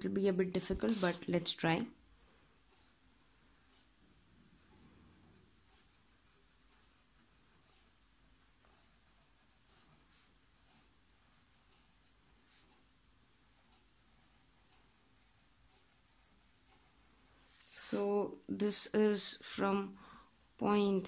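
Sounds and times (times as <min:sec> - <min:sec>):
pencil scratching on paper: 0:00.5 - 0:01.6, 0:04.5 - 0:18.1.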